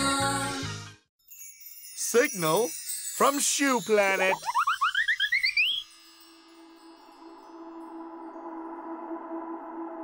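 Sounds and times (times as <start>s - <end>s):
rising chirpy cartoon notes: 4.0s - 6.2s
ambient synthesizer drone: 7.3s - 10.0s.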